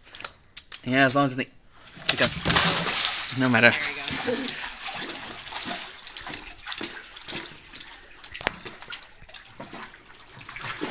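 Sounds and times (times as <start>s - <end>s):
water splashing in shallow pool: 1.9s - 10.9s.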